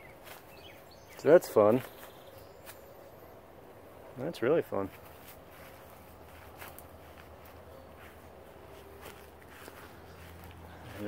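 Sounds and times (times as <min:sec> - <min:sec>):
faint high bird chirp: 0:00.0 - 0:03.6, 0:07.0 - 0:11.0.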